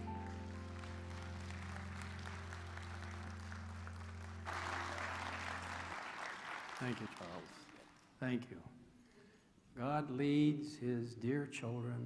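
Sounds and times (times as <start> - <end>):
audience applauding: 0.0 - 8.2.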